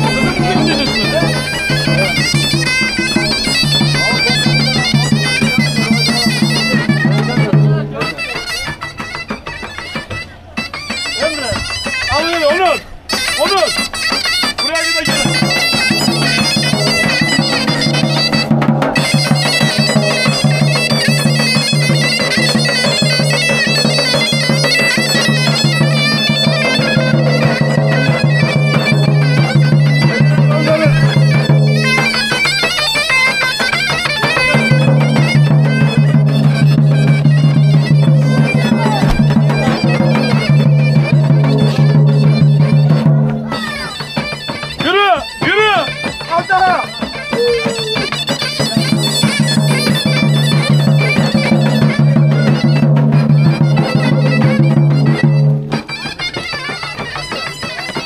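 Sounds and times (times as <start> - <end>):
bagpipe melody with drone: 0.0 - 58.0.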